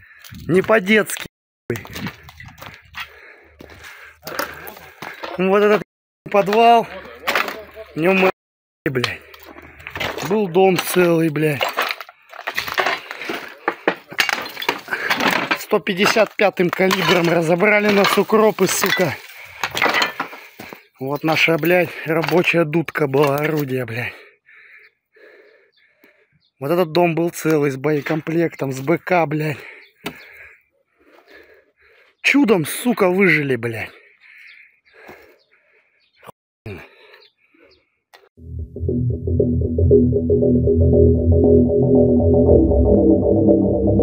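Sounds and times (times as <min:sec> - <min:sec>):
footsteps crunching over debris: 0:09.2 - 0:15.1.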